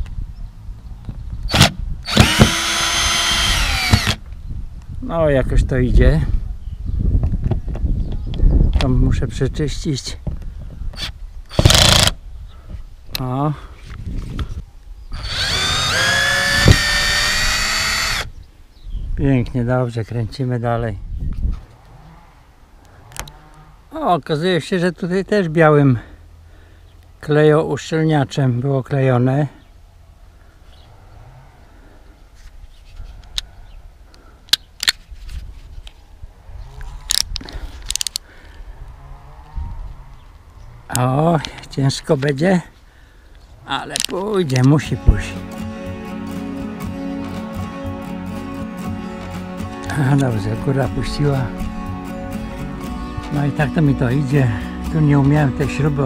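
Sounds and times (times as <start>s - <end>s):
sharp clicks: 1.5s - 4.3s
cordless drill motor spinning: 1.6s - 4.2s, 11.0s - 12.1s, 15.1s - 18.3s.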